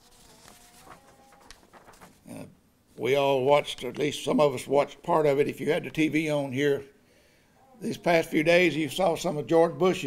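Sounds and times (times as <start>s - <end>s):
paper handling: 0.0s - 2.3s.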